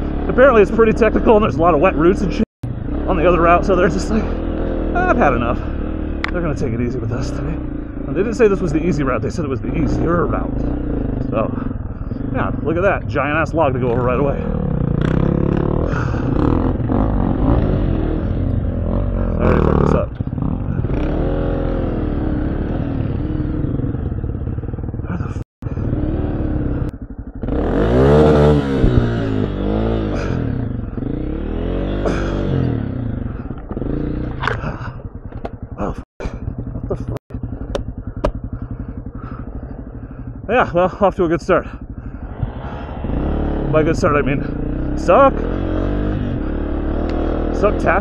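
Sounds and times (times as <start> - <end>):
dirt bike engine revving: 0.0 - 48.0.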